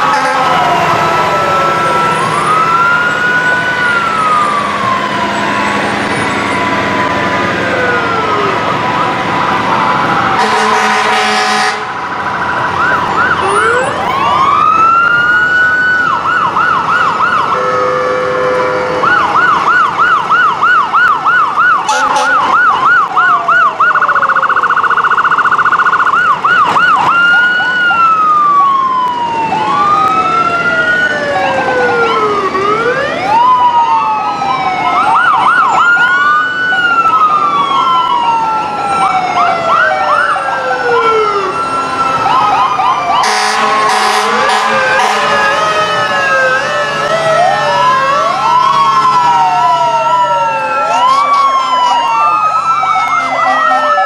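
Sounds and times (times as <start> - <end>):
fire truck sirens wailing: 0.0 - 54.0
steady low siren tone: 0.0 - 54.0.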